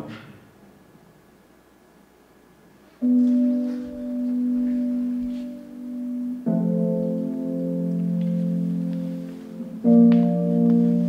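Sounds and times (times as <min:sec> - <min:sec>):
held instrumental chord: 0:03.0 - 0:11.0.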